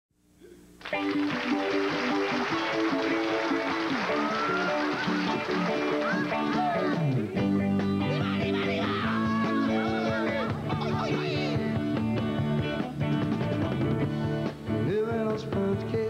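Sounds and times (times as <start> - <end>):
country band instrumental: 0.8 - 16.0
electric guitars with sliding notes: 0.8 - 16.0.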